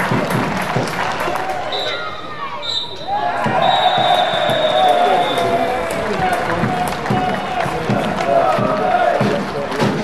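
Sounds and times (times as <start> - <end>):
crowd noise: 0.0 - 10.0
voices shouting: 1.3 - 9.5
referee's whistle blasts: 1.7 - 5.6.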